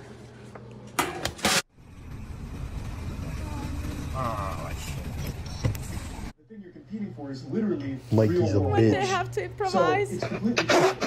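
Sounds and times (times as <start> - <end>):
vehicle engine and road noise: 1.7 - 6.3.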